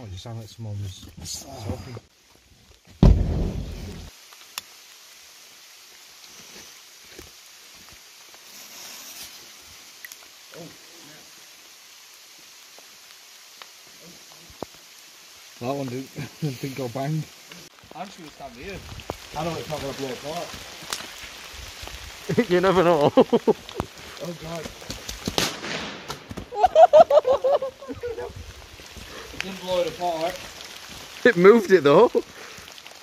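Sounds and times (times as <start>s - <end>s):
heavy rain: 1.3s - 33.0s
firework bang: 3.0s - 4.1s, 25.2s - 26.4s
firework hiss: 3.0s - 33.0s
loud laughter: 23.0s - 23.6s, 26.5s - 28.4s
small firework cracks: 23.6s - 26.6s.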